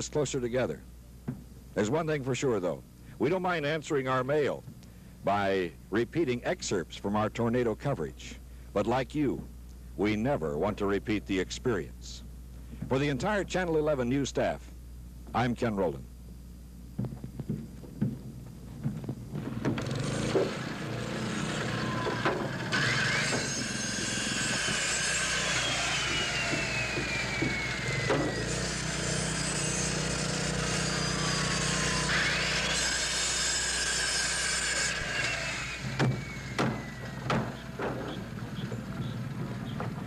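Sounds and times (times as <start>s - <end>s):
hammer blows: 19.4s - 32.8s
power saw cutting lumber: 19.4s - 40.0s.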